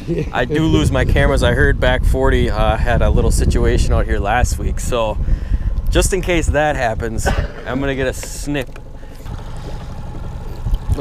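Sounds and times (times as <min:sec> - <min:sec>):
wind rumbling on microphone: 0:00.0 - 0:08.5, 0:09.2 - 0:11.0.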